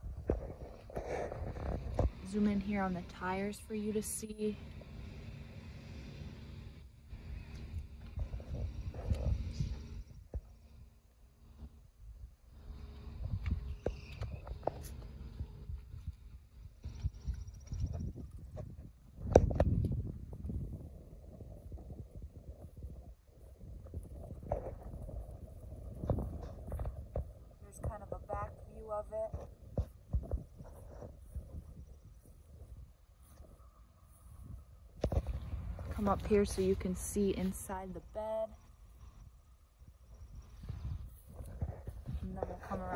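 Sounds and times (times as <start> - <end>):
wind rumbling on microphone: 0.0 - 42.9.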